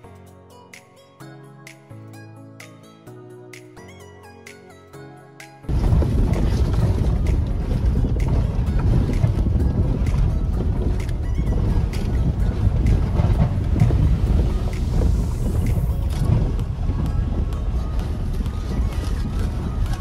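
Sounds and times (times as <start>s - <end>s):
truck engine and tyres rumbling: 5.7s - 20.0s.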